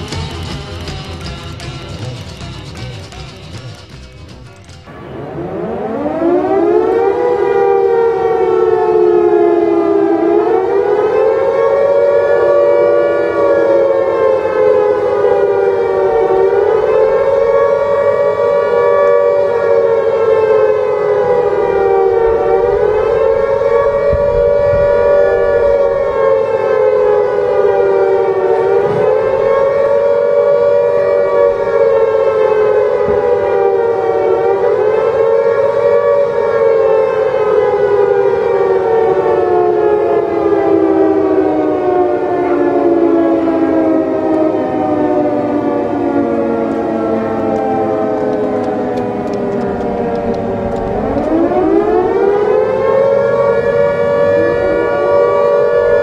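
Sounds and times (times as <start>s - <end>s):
civil defense siren wailing: 0.0s - 56.0s.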